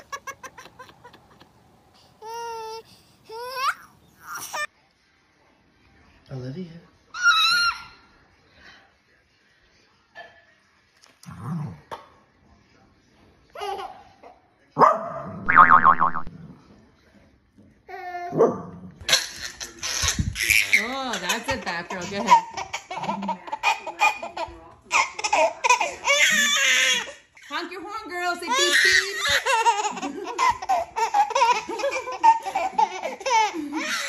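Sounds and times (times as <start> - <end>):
adults laughing: 0.0 - 1.6, 29.4 - 34.0
baby laughing and squealing: 19.6 - 21.4, 28.5 - 34.0.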